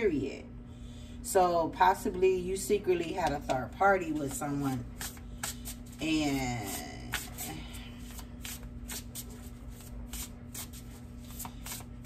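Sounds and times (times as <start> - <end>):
cards being shuffled by hand: 3.2 - 12.0.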